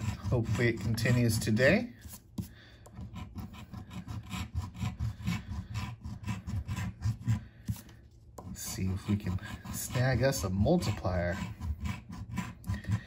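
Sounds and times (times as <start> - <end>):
coin scratching lottery ticket: 0.0 - 1.6, 3.0 - 7.4, 8.6 - 13.0.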